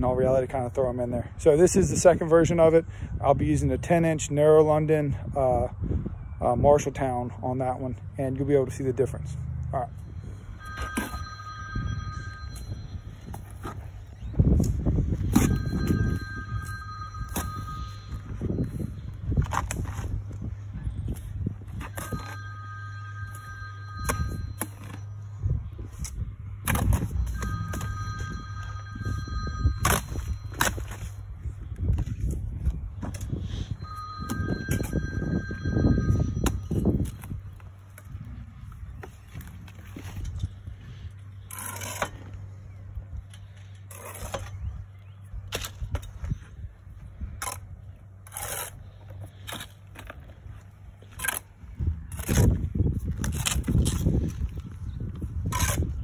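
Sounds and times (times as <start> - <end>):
two-tone phone ringing: 9.8 - 14.3, 15.1 - 19.6, 21.8 - 25.8, 26.6 - 31.5, 33.4 - 38.0
trowel scraping mortar: 41.4 - 42.3, 48.2 - 49.8.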